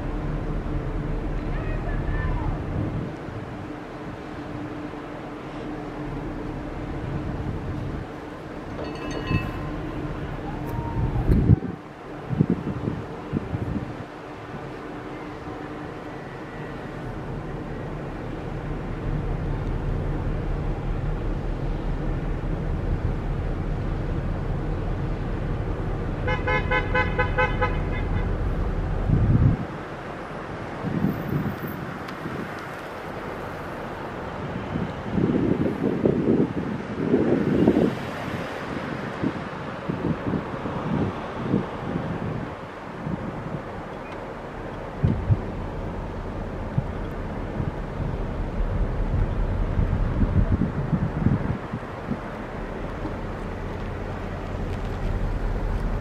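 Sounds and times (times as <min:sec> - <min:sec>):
wind buffeting microphone: 0:00.0 - 0:16.0, 0:16.9 - 0:56.0
pulsed horn toots: 0:26.2 - 0:28.5
low rumble: 0:44.3 - 0:56.0.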